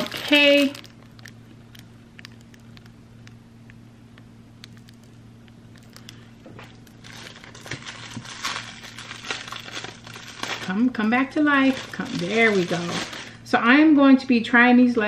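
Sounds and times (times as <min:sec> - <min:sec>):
cellophane crinkling: 0:00.0 - 0:02.9, 0:05.8 - 0:13.4
faint low hum: 0:00.0 - 0:15.0.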